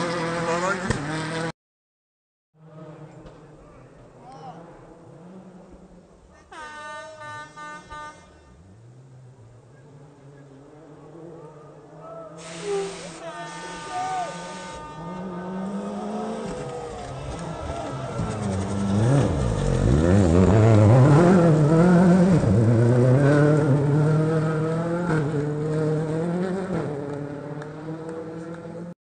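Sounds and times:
rally car engine revving: 0:00.0 - 0:01.5, 0:02.6 - 0:06.4, 0:08.5 - 0:29.0.

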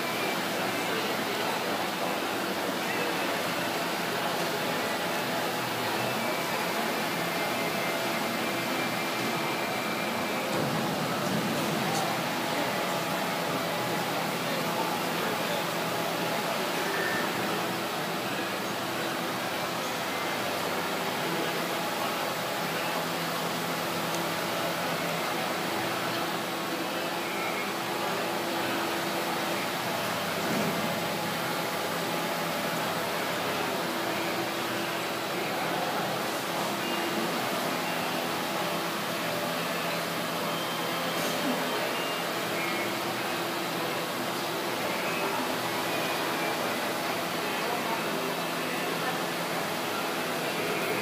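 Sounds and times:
indoor arena background hiss: 0:00.0 - 0:51.0.

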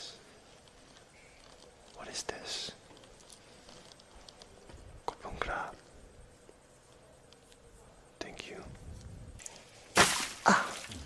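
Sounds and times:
person whispering: 0:01.6 - 0:02.9, 0:05.1 - 0:05.9, 0:07.8 - 0:08.8.

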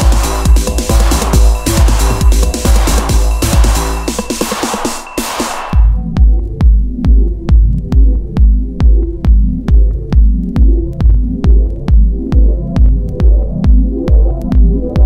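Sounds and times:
kick drum: 0:00.0 - 0:15.0
low synth pattern: 0:00.0 - 0:15.0.

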